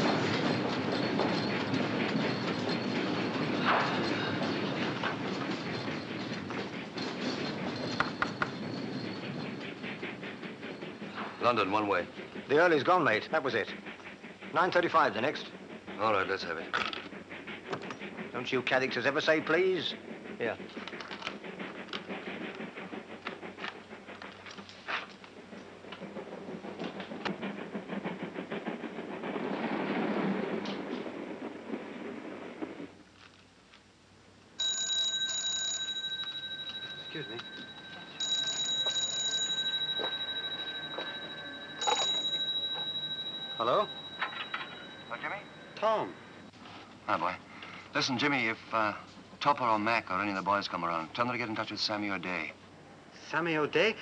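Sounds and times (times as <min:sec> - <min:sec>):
telephone bell ringing: 0:34.6 - 0:45.1.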